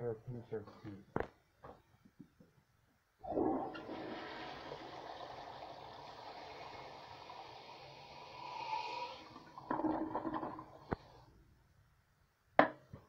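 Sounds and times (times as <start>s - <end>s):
toilet flushing: 3.2s - 11.3s.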